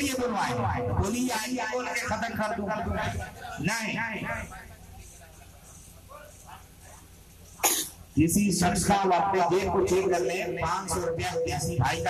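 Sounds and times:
faint low voices: 2.7s - 8.2s
cough into a microphone: 7.6s - 8.0s.

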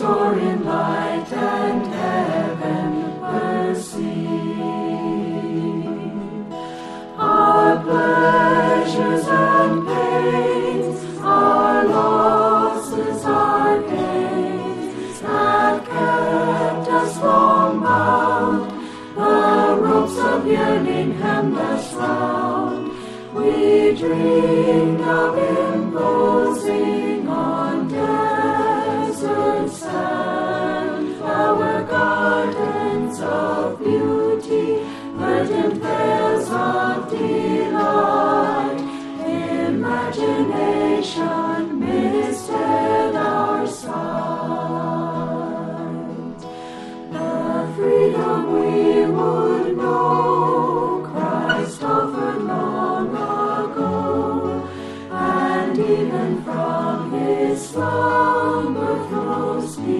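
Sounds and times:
choir singing in harmony: 0.0s - 59.9s.

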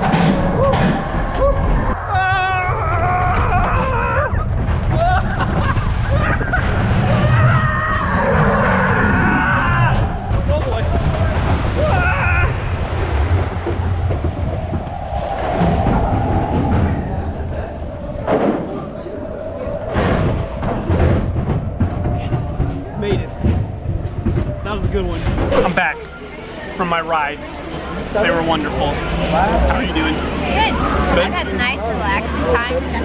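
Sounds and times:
wind buffeting microphone: 0.0s - 26.6s
roller coaster rumbling on track: 0.0s - 33.0s.

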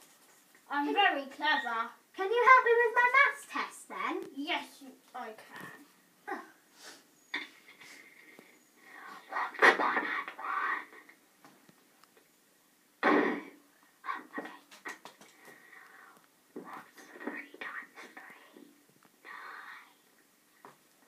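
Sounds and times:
person whispering: 5.2s - 5.9s, 8.9s - 11.1s, 14.0s - 15.0s, 15.6s - 20.1s.

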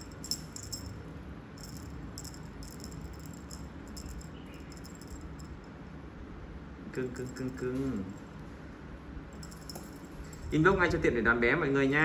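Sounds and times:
small bell jingling: 0.0s - 5.7s, 7.0s - 8.4s, 9.4s - 10.6s.

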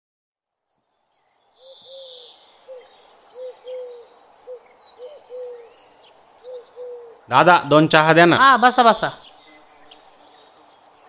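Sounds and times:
small birds chirping: 0.6s - 11.0s
dove cooing: 1.6s - 5.8s, 6.4s - 7.3s.

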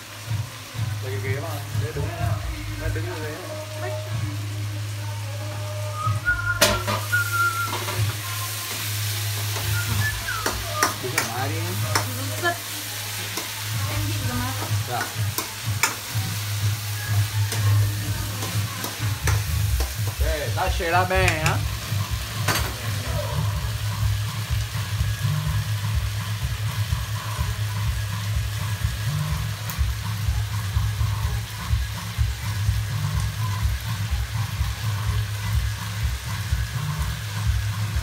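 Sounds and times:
vegetables sizzling in a wok: 0.0s - 38.0s.

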